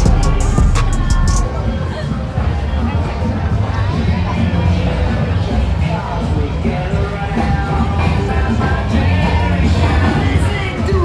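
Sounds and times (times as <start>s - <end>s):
music with heavy bass beat: 0.0s - 11.0s
street crowd chatter: 0.0s - 11.0s.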